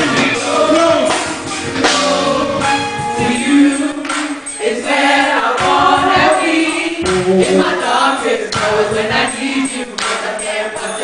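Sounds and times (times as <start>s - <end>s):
band playing: 0.0s - 10.6s
gospel singers singing together: 0.0s - 11.0s.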